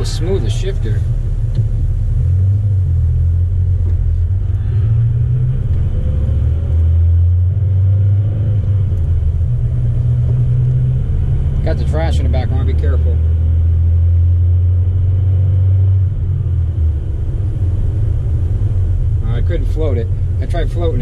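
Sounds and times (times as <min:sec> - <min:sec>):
road noise: 0:00.0 - 0:21.0
truck engine rumble: 0:00.0 - 0:21.0.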